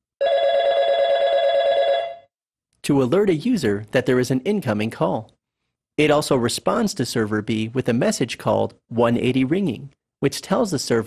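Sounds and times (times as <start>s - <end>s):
telephone ringing: 0.2s - 2.3s.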